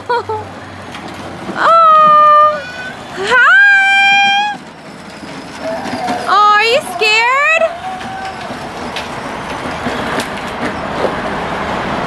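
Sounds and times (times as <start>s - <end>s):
toy car rolling over pavers: 0.5s - 11.3s.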